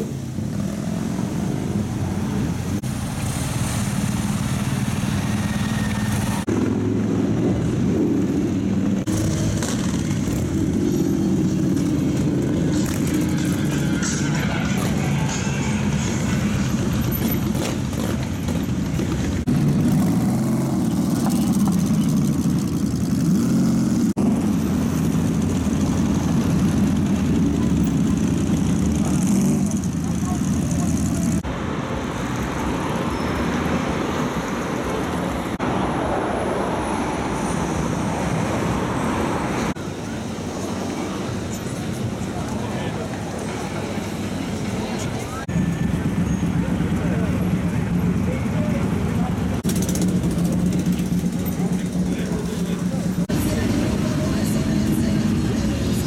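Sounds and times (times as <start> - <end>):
motorcycle engines running: 0.0 - 35.8, 37.6 - 56.0
people's voices: 9.1 - 20.0, 25.8 - 33.8, 38.6 - 56.0.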